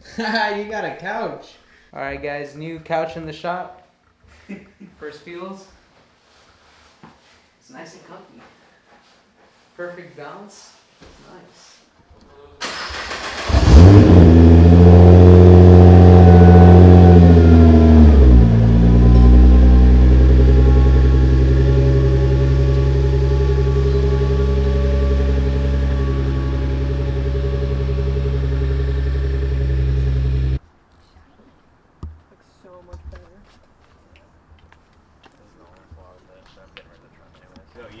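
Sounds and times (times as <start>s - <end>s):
car engine starting and idling: 12.6s - 30.6s.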